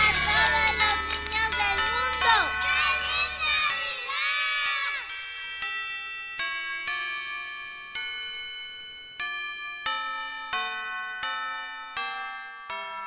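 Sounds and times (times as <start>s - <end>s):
bell-like chime melody: 0.0s - 13.0s.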